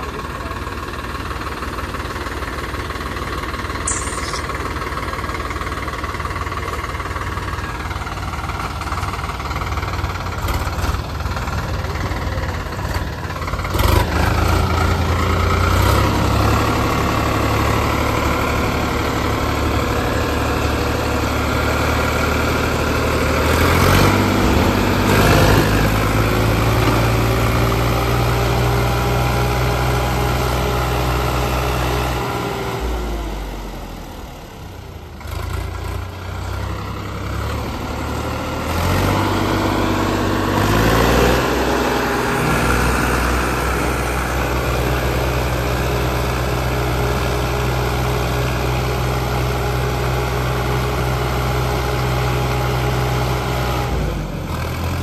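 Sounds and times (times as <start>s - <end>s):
diesel tractor engine: 0.0s - 55.0s.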